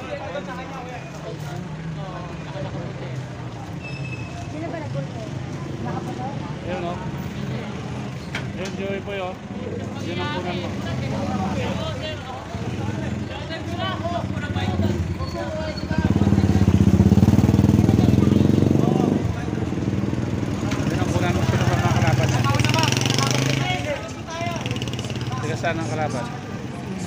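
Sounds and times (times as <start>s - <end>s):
people's voices: 0.0s - 27.0s
vehicle engine running: 10.5s - 27.0s.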